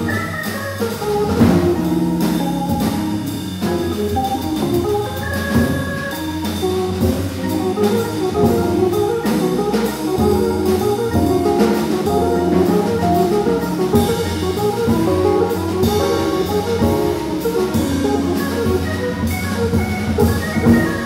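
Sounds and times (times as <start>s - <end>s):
cymbals: 0.0s - 21.0s
drum kit: 0.0s - 21.0s
organ: 0.0s - 21.0s.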